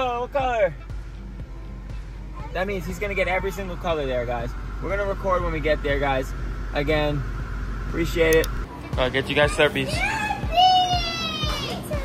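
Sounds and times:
background music: 0:00.0 - 0:07.9, 0:08.5 - 0:12.0
child's high-pitched drawn-out vowel: 0:10.0 - 0:12.0.

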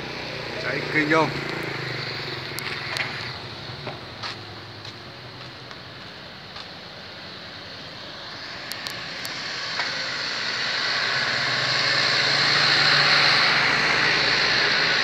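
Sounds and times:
vehicle passing on road: 0:00.0 - 0:15.0.

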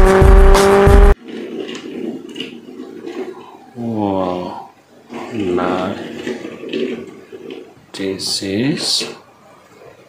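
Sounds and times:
toy car rolling on tabletop: 0:01.2 - 0:10.0.

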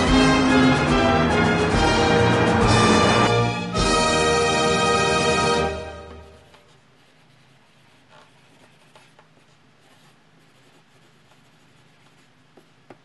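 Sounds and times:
marker scratching on paper: 0:06.5 - 0:12.7.

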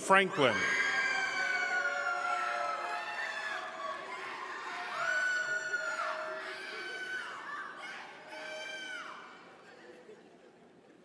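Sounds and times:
audience cheering and whooping: 0:00.5 - 0:09.6.

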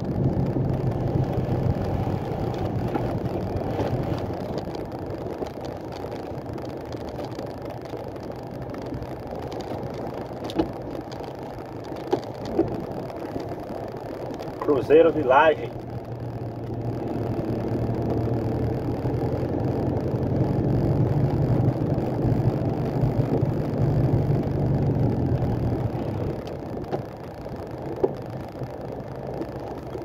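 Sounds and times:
diesel truck engine running: 0:00.0 - 0:30.0
road noise: 0:00.0 - 0:30.0.

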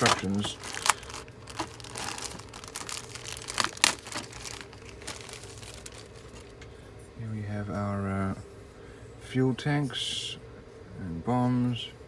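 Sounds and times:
plastic bag crinkling: 0:00.0 - 0:06.6.

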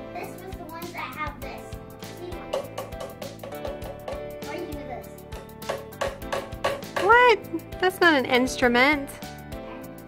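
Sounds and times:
tapping plastic percussion tubes: 0:02.4 - 0:04.4, 0:05.3 - 0:07.3.

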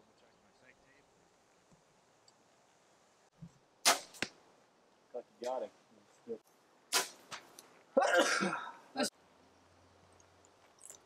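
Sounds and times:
arrow striking target: 0:03.8 - 0:04.4, 0:06.9 - 0:07.5
compound bow shot crack: 0:03.8 - 0:04.4, 0:06.9 - 0:07.5.

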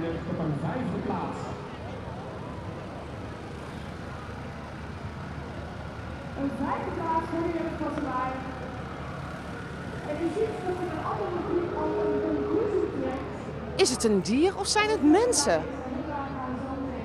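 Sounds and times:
people's voices: 0:10.1 - 0:17.0.

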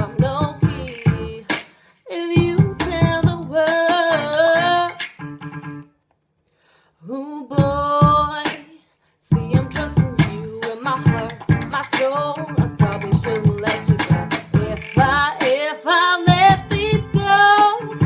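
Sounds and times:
woman singing: 0:00.0 - 0:05.1, 0:07.0 - 0:18.0
r and b backing track: 0:00.0 - 0:05.9, 0:07.6 - 0:08.7, 0:09.3 - 0:18.0.

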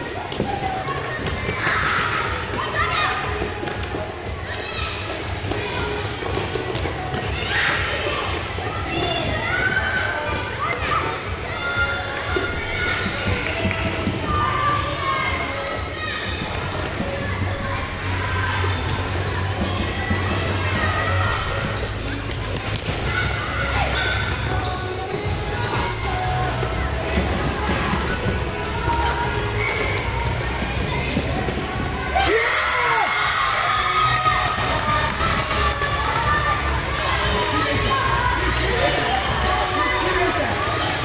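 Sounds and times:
children's voices and shouts: 0:00.0 - 0:41.0.

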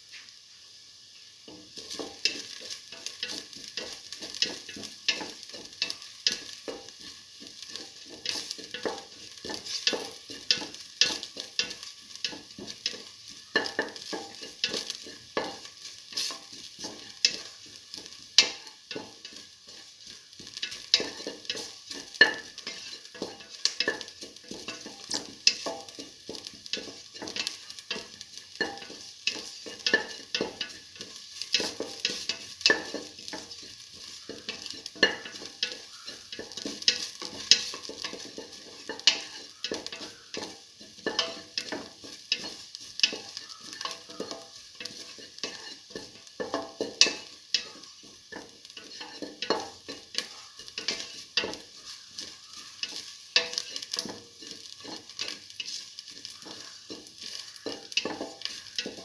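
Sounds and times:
shallots sizzling in oil: 0:00.0 - 0:59.0
utensil scraping metal pot: 0:01.5 - 0:59.0.

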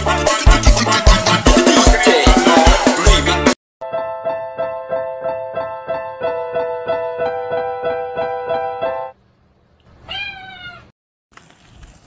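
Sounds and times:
cat meowing: 0:09.9 - 0:10.9.

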